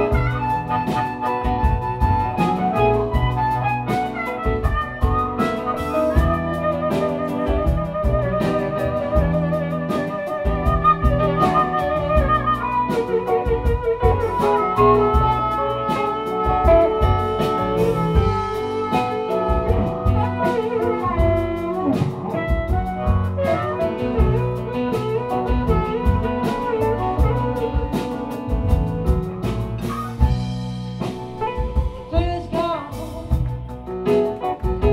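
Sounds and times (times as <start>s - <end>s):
blues harmonica solo: 0.0s - 34.2s
blues band playing: 0.0s - 34.9s.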